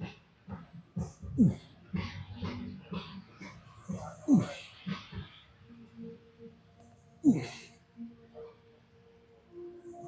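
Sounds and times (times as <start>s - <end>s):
man grunting with effort: 1.3s - 1.6s, 3.9s - 4.6s, 7.2s - 7.7s.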